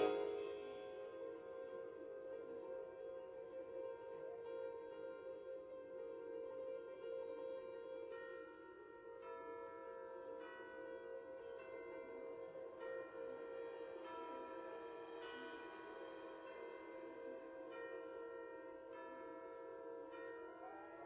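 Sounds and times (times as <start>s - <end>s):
held low note: 0.0s - 0.7s
bell-like metallic notes: 0.0s - 21.0s.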